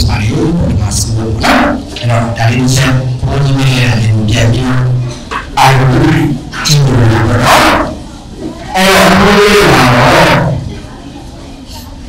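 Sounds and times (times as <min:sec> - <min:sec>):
man speaking through microphone: 0:00.0 - 0:10.8.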